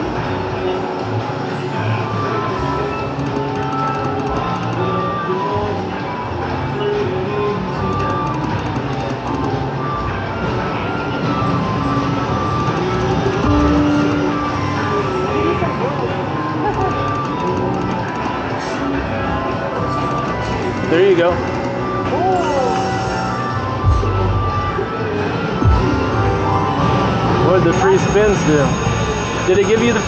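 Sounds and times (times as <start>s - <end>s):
slot machine jingles and chimes: 2.0s - 23.9s, 26.5s - 30.0s.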